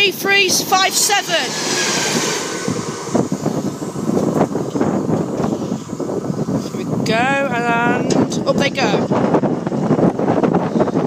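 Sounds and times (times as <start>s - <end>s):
diesel train rumble: 0.0s - 11.0s
wind buffeting microphone: 0.0s - 11.0s.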